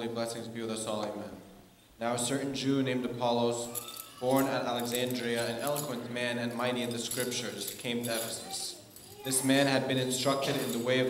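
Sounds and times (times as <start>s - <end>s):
censer bells jingling: 3.6s - 6.0s, 6.7s - 11.0s.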